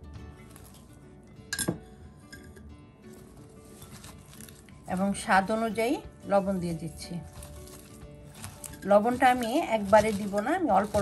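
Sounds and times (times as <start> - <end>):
soft background music: 0.0 - 11.0
clink against glass bowl: 1.5 - 2.6.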